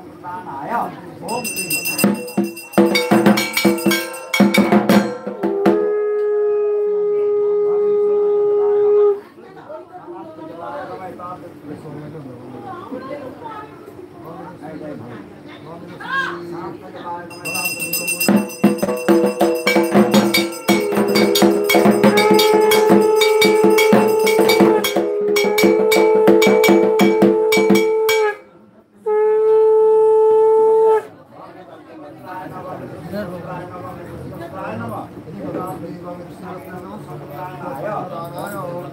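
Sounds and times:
metal bell struck rhythmically: 0:01.3 - 0:05.5, 0:17.3 - 0:28.4
conch shell blown: 0:01.5 - 0:09.2, 0:17.9 - 0:31.2.

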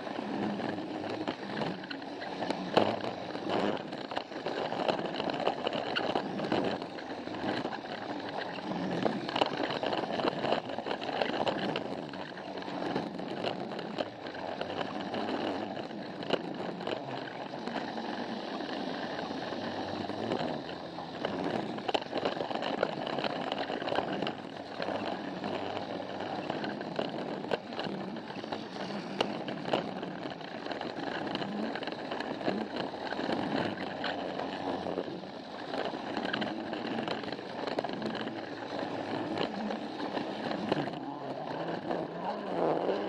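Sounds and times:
toy train motor whirring: 0:00.0 - 0:43.0
wheels rattling over plastic track: 0:00.0 - 0:43.0.

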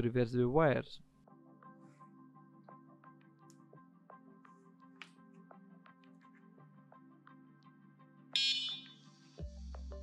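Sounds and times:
background music: 0:00.0 - 0:10.0
high-pitched electric horn blast: 0:08.4 - 0:09.0.

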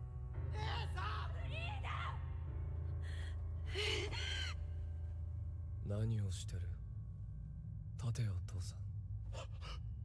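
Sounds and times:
low steady hum: 0:02.5 - 0:10.0.

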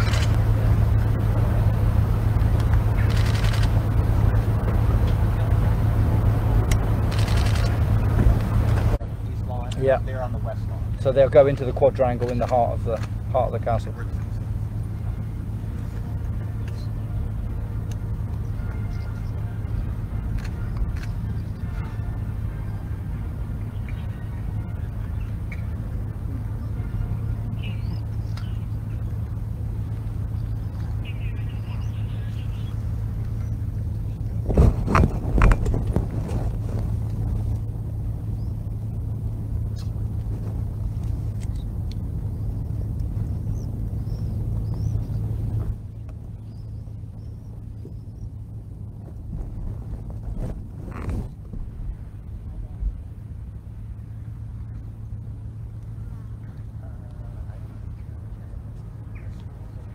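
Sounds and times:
vehicles idling hum: 0:00.0 - 0:59.9
faint bird chirps: 0:18.4 - 0:19.9, 0:23.6 - 0:25.8, 0:26.4 - 0:29.2, 0:30.2 - 0:33.7, 0:43.4 - 0:48.4.

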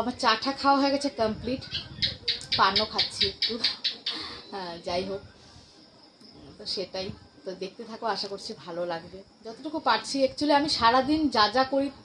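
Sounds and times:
woman talking: 0:00.0 - 0:05.3, 0:06.5 - 0:12.0.

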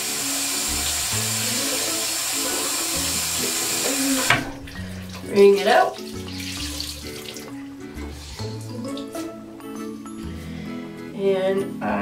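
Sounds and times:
background music: 0:00.0 - 0:12.0
tap running into sink: 0:00.6 - 0:05.4.

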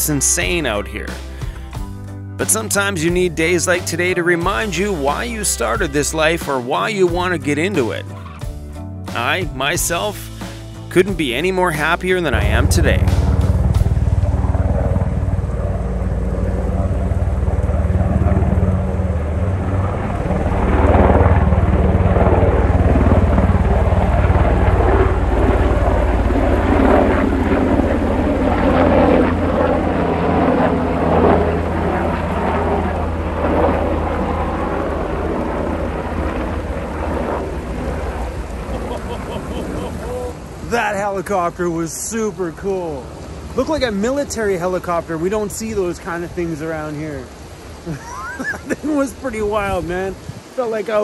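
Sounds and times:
helicopter rotor beating: 0:00.0 - 0:46.9.

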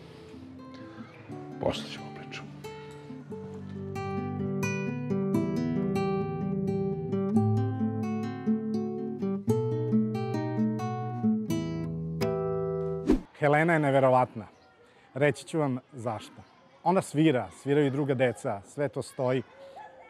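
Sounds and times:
fingerstyle nylon-string guitar: 0:00.0 - 0:13.3.

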